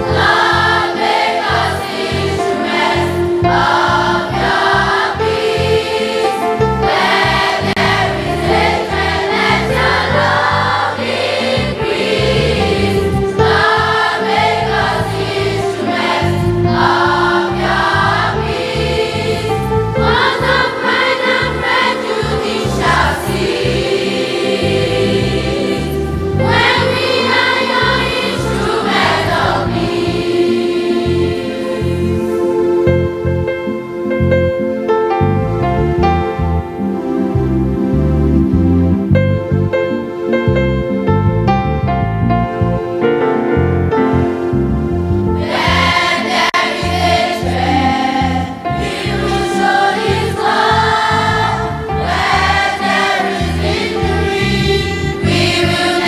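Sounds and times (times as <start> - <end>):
children's choir singing a hymn: 0.0 - 35.7, 44.1 - 56.0
electronic keyboard chords: 0.0 - 56.0.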